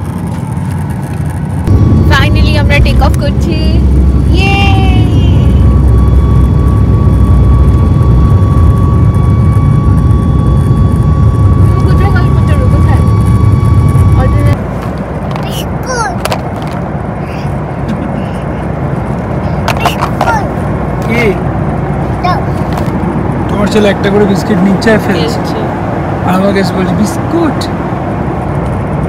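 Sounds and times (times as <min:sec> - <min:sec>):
thin engine whine: 0:00.0 - 0:15.6, 0:16.2 - 0:29.0
jet engine rumble: 0:00.0 - 0:29.0.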